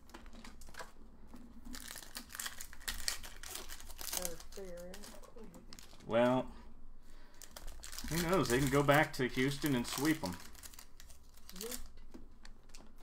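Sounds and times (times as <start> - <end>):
foil wrappers crinkling and tearing: 0.0 - 6.2, 7.2 - 12.9.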